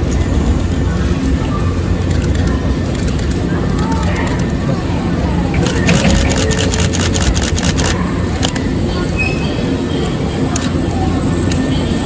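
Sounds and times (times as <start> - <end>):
electric train rumbling: 0.0 - 12.0.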